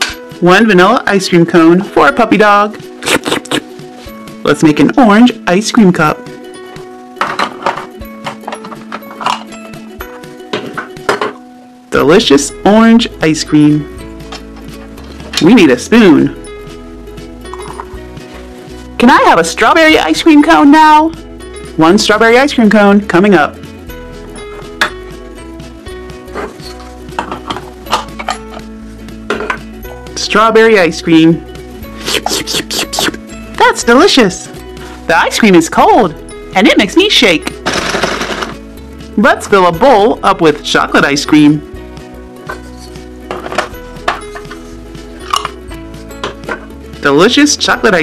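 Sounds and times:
light background music: 0.0 - 48.0
plastic toy clicks and knocks: 37.6 - 38.6.

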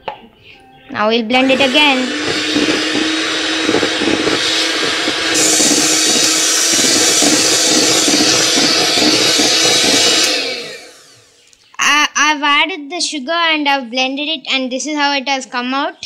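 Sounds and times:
beaters creaming butter in bowl: 1.3 - 11.4
electric hand mixer humming: 1.3 - 11.5.

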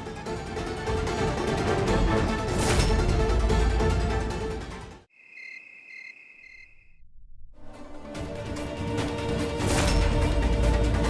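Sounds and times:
crickets chirping: 5.1 - 7.0.

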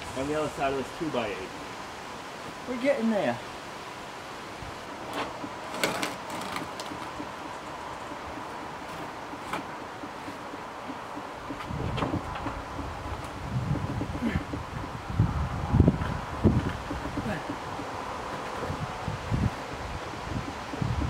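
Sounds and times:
wood-on-wood knocks and scrapes: 5.1 - 14.7
wind rumble on microphone: 10.5 - 21.0.

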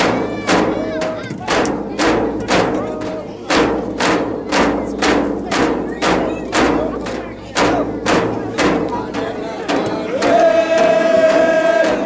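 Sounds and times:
frame drums beating: 0.0 - 12.0
group of voices singing: 8.6 - 12.0.

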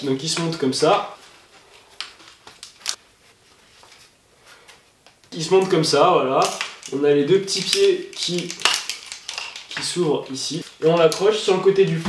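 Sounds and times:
plastic parts clicking together: 6.4 - 10.0.

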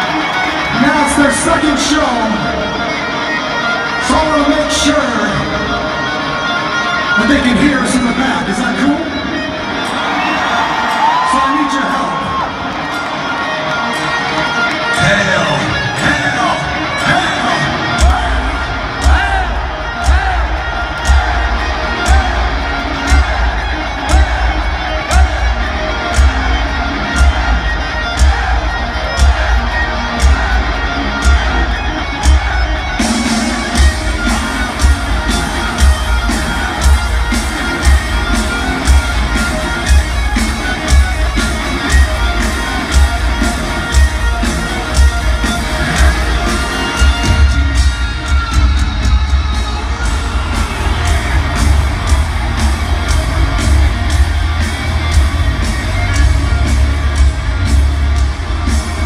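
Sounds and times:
rock band playing: 0.0 - 59.0
crowd cheering and whooping: 9.5 - 14.8, 17.6 - 59.0
heavy kick drum beat: 18.0 - 25.6.

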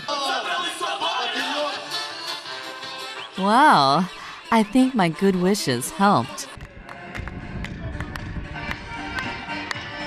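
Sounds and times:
spectators clapping in time: 6.6 - 10.0.

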